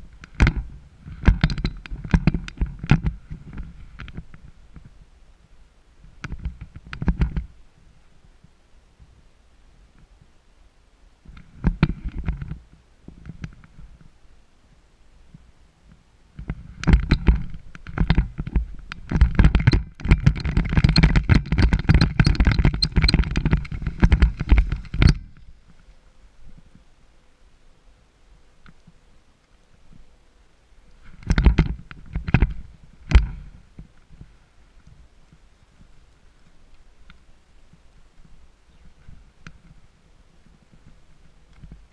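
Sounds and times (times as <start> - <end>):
handling knocks and clicks: 16.4 - 25.5.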